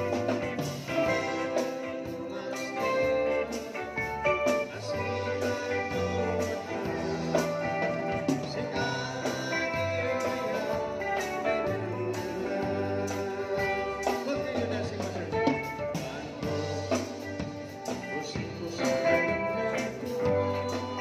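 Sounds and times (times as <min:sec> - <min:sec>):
bass: 0:00.0 - 0:21.0
drum kit: 0:00.0 - 0:21.0
electric guitar: 0:00.0 - 0:21.0.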